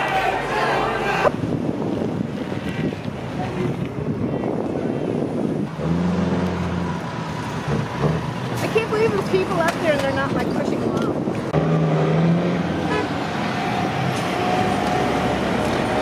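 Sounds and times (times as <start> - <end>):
outdoor background rumble: 0.4 - 16.0
wind on microphone: 1.1 - 16.0.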